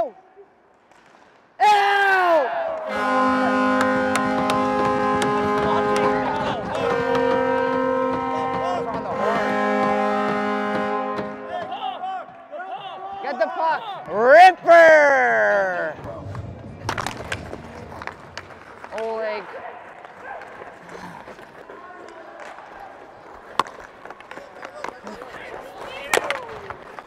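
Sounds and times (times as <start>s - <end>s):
people shouting: 1.6s - 10.2s, 11.5s - 16.0s
arena goal horn blasts: 2.8s - 12.0s.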